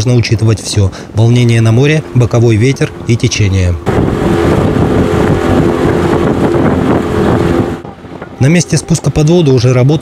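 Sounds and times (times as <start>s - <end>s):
loud rushing noise: 3.8s - 8.2s.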